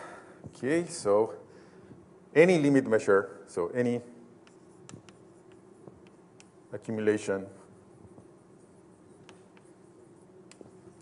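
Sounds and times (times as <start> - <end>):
chalk taps and scratches on board: 4.4 - 6.6, 7.6 - 11.0.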